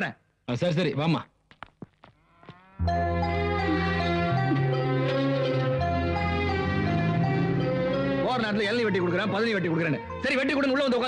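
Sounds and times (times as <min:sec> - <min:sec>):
film music with low drone: 0:02.8 - 0:10.6.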